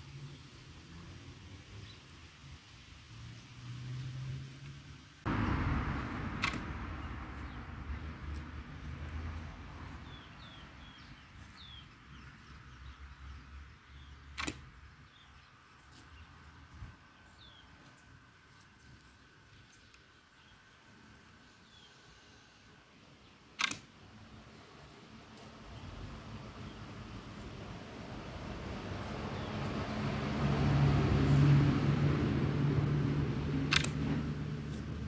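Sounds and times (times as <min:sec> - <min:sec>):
sharp clicks: 0:06.3 - 0:07.5, 0:14.3 - 0:14.8, 0:23.5 - 0:24.0, 0:33.6 - 0:35.0.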